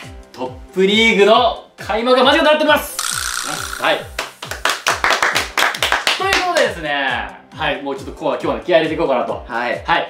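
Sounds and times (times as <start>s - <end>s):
people clapping: 4.1s - 6.8s.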